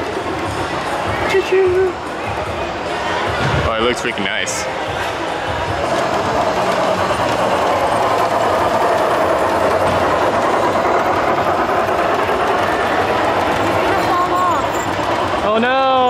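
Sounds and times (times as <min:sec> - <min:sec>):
model train motor and wheels: 0:05.6 - 0:16.0.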